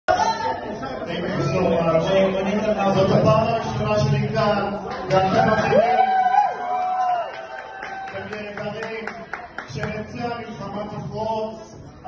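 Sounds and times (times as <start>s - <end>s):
people talking at once: 0.1s - 5.9s.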